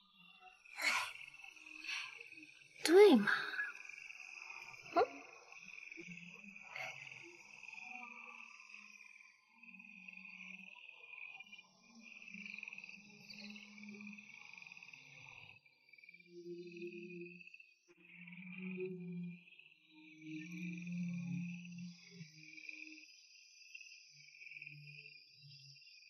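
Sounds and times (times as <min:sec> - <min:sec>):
low sustained music tones: 0:00.0 - 0:26.0.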